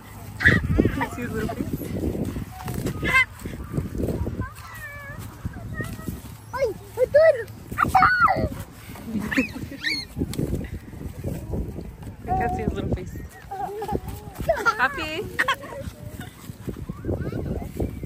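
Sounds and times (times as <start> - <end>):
children babbling and calling out: 0.0 - 18.0
farm animal calls: 2.5 - 8.4.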